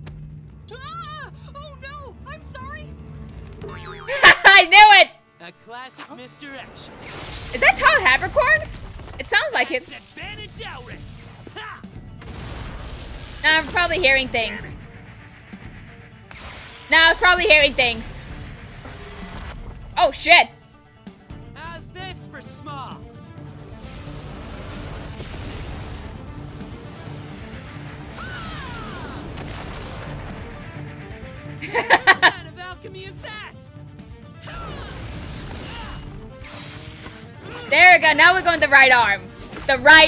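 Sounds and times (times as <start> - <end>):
faint background music: 16.2 - 40.0
rushing blast: 23.6 - 31.6.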